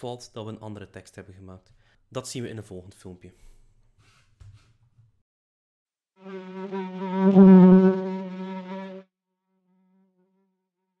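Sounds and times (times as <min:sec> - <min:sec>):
housefly buzzing: 0:06.2 - 0:10.4.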